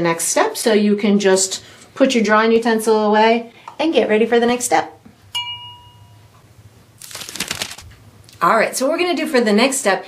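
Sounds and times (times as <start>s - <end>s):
bright glass-like ding: 5.3s - 6.2s.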